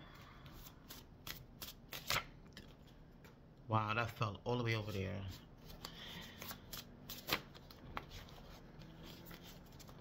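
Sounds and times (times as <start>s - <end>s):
cards being shuffled: 0.4s - 2.7s, 4.8s - 10.0s.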